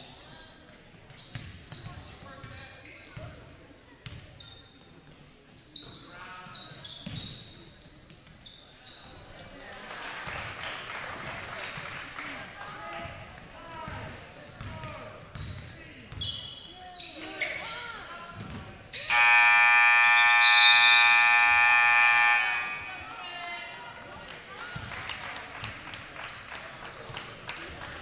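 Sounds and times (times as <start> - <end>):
crowd voices in a hall: 0.0 - 28.0
scoreboard horn blast: 19.1 - 23.1.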